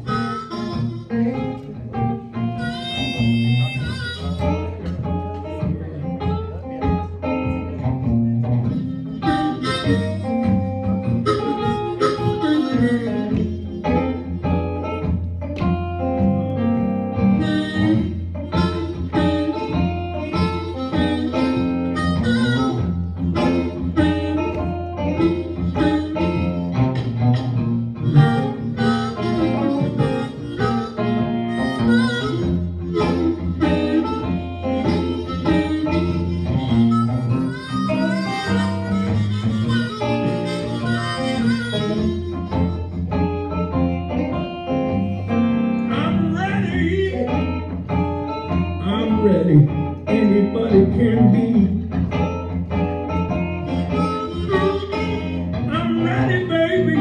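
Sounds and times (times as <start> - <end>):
blues harmonica: 0.0 - 57.0
picked electric guitar: 0.0 - 57.0.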